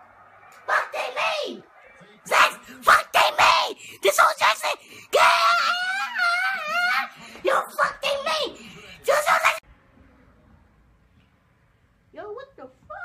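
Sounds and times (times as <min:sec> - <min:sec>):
people shouting excitedly: 0:00.6 - 0:09.6.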